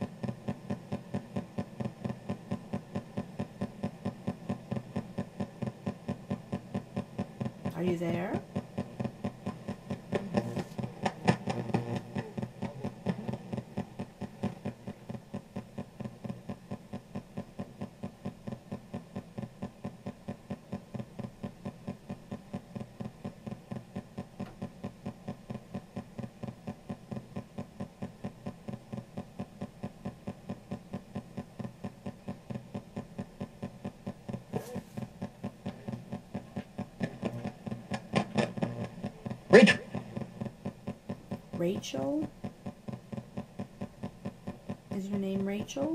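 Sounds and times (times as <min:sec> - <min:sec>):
bursts of static and radio sound: 0:07.7 - 0:16.6, 0:34.4 - 0:40.5.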